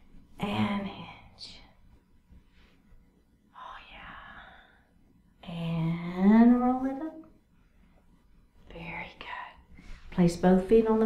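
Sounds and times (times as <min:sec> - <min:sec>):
woman whispering softly: 0:00.4 - 0:01.8, 0:03.5 - 0:04.8, 0:08.7 - 0:10.2.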